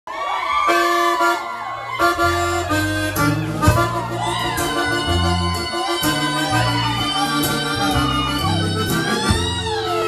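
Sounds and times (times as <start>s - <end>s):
live band playing: 0.3s - 10.0s.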